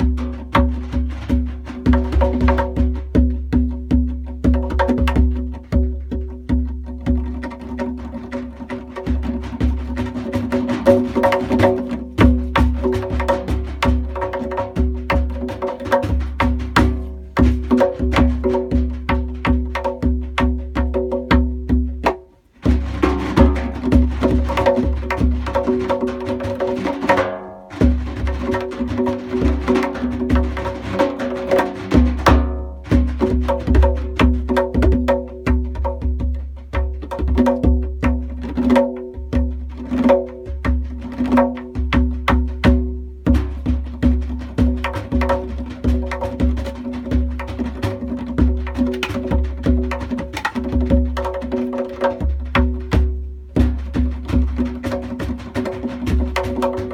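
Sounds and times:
goblet drum solo: 0:00.0 - 0:56.9.

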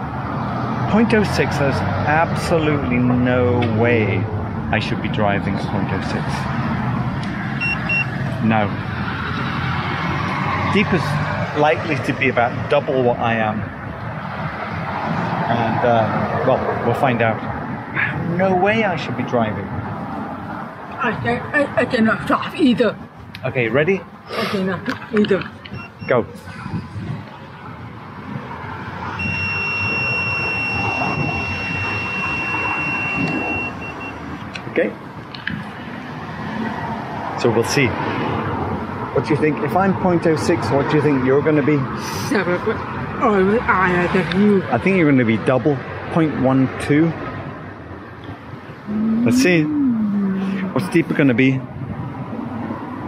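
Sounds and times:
street background noise: 0:00.0 - 0:53.0
breathalyzer beeps: 0:07.6 - 0:08.2, 0:25.7 - 0:26.2, 0:29.2 - 0:34.2
breathalyser high-pitched tone: 0:48.9 - 0:50.8.

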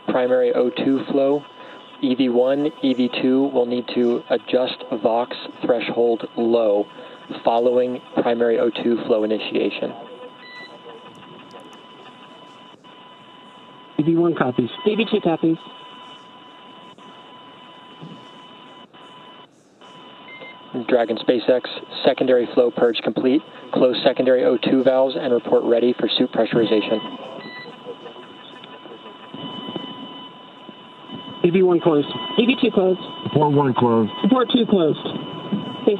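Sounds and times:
faint steady tones: 0:00.0 - 0:35.9
radio hiss: 0:00.0 - 0:35.9.

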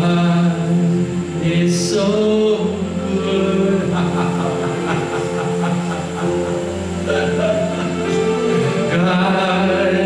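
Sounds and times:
man singing worship song: 0:00.0 - 0:06.4, 0:07.1 - 0:10.0
voices singing held notes: 0:00.0 - 0:10.0.

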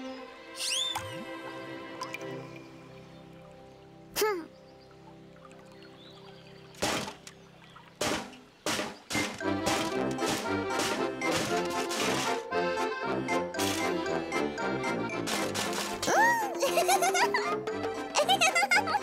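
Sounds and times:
soft background music: 0:00.0 - 0:19.0
falling whistle swish: 0:00.6 - 0:01.1
swooping whistle: 0:00.6 - 0:01.2.

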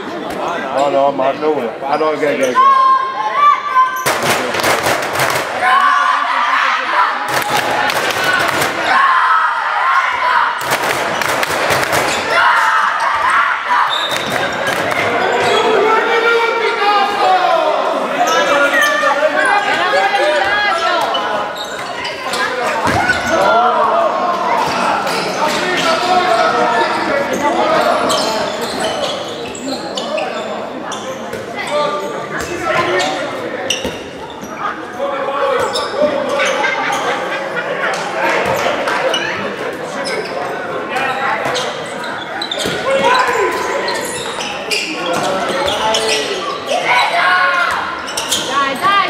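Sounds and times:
shoes squeaking: 0:13.0 - 0:15.8, 0:40.0 - 0:47.0.

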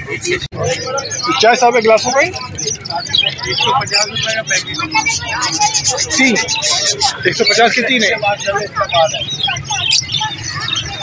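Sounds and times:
low traffic rumble: 0:00.0 - 0:11.0
people talking: 0:00.0 - 0:11.0.

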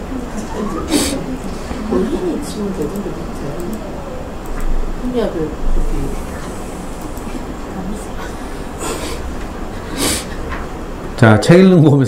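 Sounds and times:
faint murmured voices: 0:00.0 - 0:10.7.

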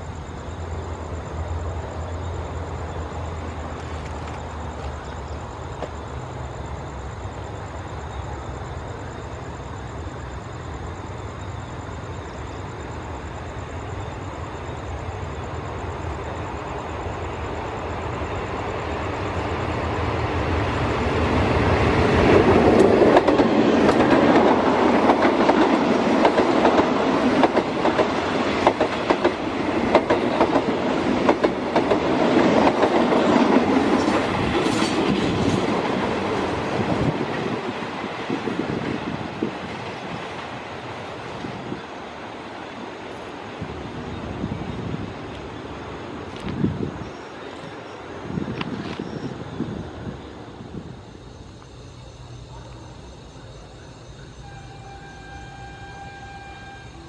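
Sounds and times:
train rumble: 0:00.0 - 0:57.0
train wheels clacking over rail joints: 0:22.3 - 0:38.1.

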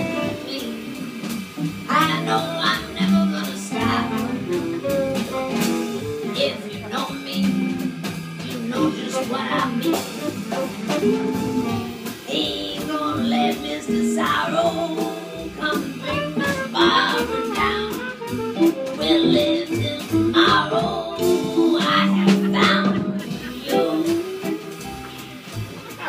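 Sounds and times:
tenor saxophone: 0:00.0 - 0:12.2, 0:14.6 - 0:25.5
double bass: 0:00.0 - 0:26.0
drums: 0:00.0 - 0:26.0
electric guitar: 0:00.0 - 0:26.0.

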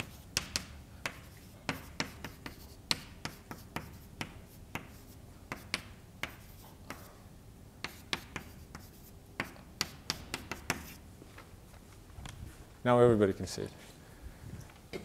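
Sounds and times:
chalk writing on blackboard: 0:00.0 - 0:07.2, 0:07.8 - 0:11.0.

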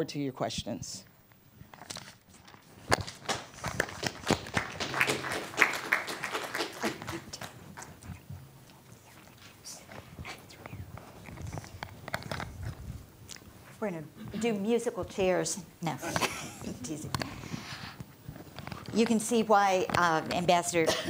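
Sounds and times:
microphone handling noise: 0:10.0 - 0:13.7.

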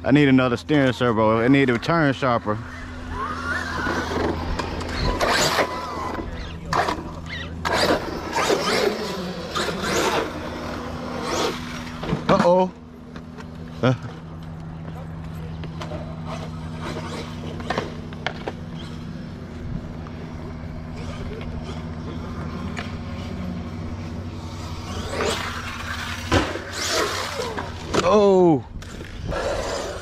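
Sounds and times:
rc truck motor hum: 0:00.0 - 0:30.0.

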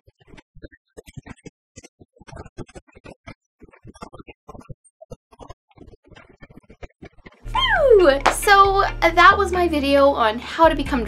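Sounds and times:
woman squealing: 0:07.5 - 0:08.1.

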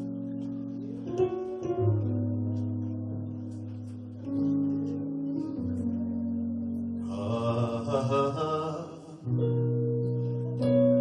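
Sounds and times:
held keyboard chords: 0:00.0 - 0:11.0.

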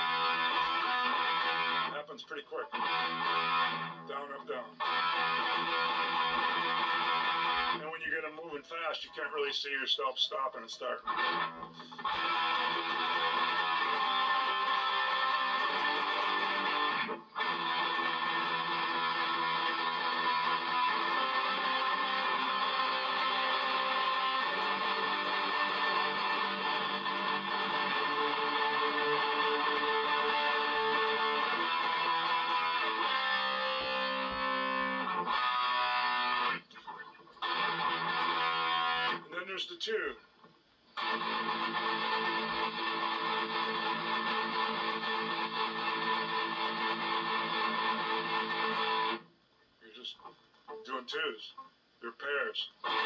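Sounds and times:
distorted electric guitar chords: 0:00.0 - 0:07.9, 0:10.6 - 0:39.4, 0:41.0 - 0:49.3, 0:52.8 - 0:53.0.

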